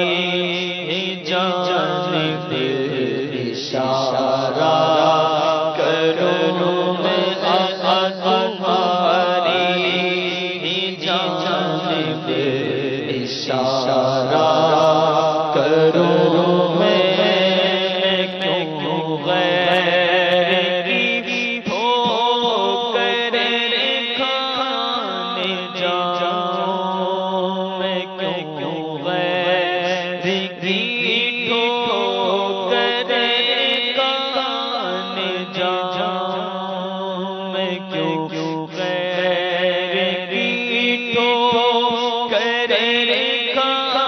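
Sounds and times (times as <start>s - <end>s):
man singing into a microphone: 0.0s - 44.0s.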